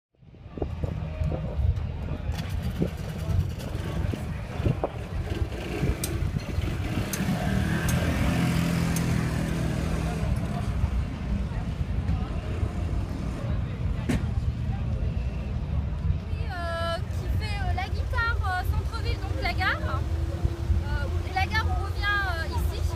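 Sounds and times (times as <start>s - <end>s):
voices of passing crowd: 0.2s - 22.9s.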